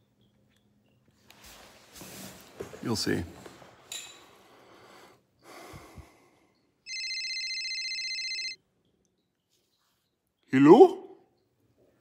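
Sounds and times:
telephone warbling ring: 6.9 - 8.6.

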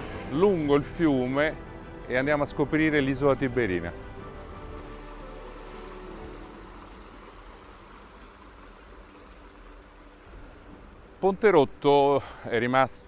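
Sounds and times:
soft background music: 0.0 - 13.0
water rushing over rapids: 4.2 - 12.8.

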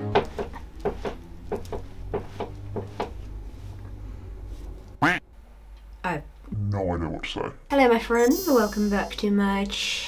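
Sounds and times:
low steady hum: 0.4 - 7.2.

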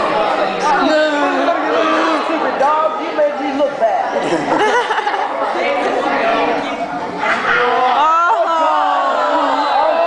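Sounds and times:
people chattering in a hall: 0.0 - 10.0.

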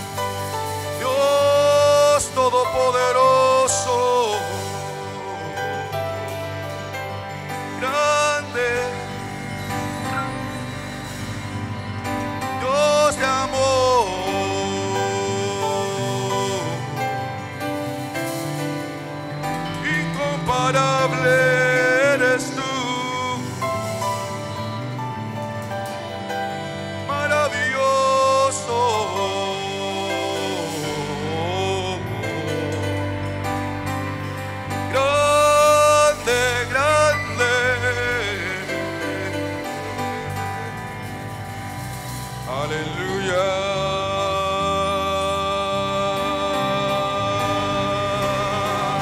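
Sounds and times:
person singing: 0.0 - 49.0
worship band music: 0.0 - 49.0.

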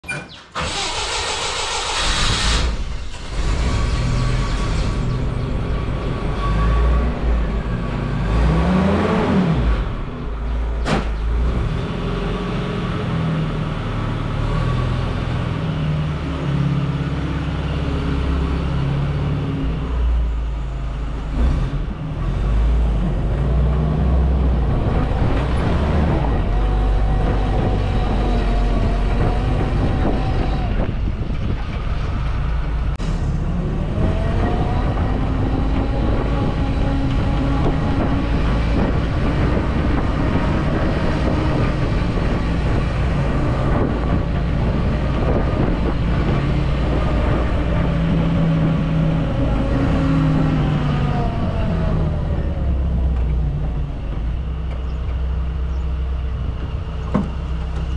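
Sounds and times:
jeep engine idling and revving: 0.7 - 57.9.

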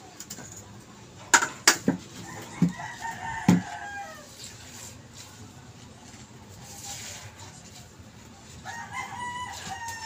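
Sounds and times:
rooster crowing: 2.2 - 4.4, 8.6 - 10.0.

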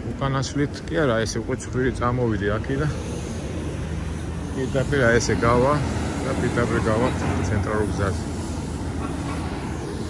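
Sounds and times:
street traffic rumble: 0.0 - 10.0
heavy truck driving: 1.4 - 10.0.

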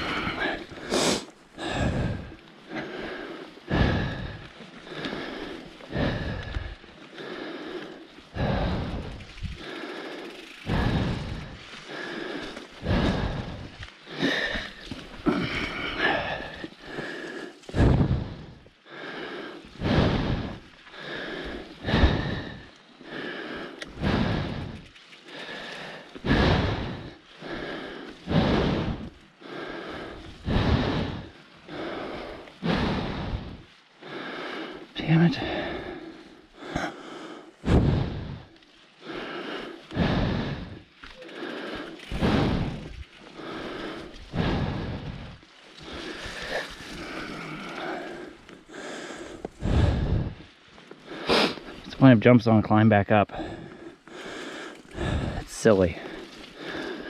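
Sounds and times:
hard rhythmic breathing: 0.0 - 57.0.

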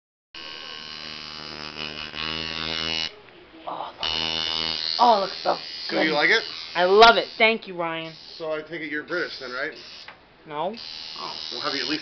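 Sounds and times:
tattoo machine buzzing: 0.4 - 3.2, 4.0 - 12.0.

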